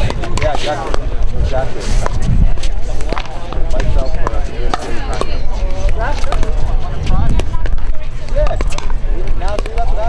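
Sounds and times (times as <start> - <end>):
paddles hitting plastic ball: 3.0 - 6.6, 8.4 - 10.0.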